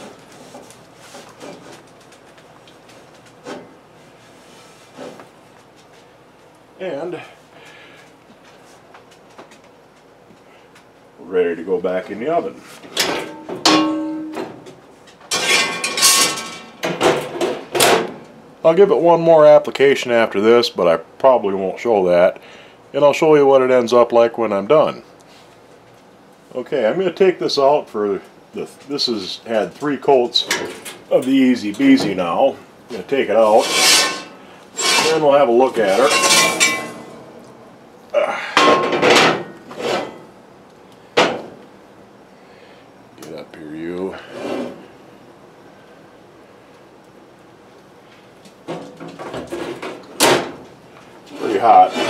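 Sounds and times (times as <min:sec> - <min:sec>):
cast iron skillet ringing: 0:13.4 - 0:14.5, 0:36.0 - 0:37.4
skillet scraping into oven: 0:33.3 - 0:37.3, 0:39.7 - 0:40.3.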